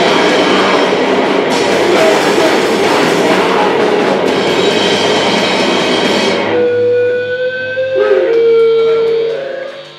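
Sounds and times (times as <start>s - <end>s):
hardcore punk band playing live: 0.0s - 9.9s
guitar amplifier feedback tones: 4.5s - 9.9s.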